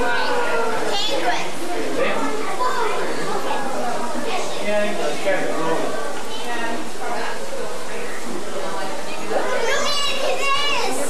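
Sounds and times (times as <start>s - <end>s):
murmur of background chatter: 0.0s - 11.0s.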